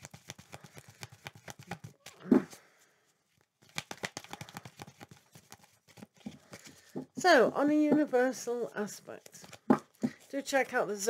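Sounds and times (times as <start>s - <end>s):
cards being shuffled: 0.0s - 2.6s, 3.3s - 7.0s, 9.1s - 10.8s.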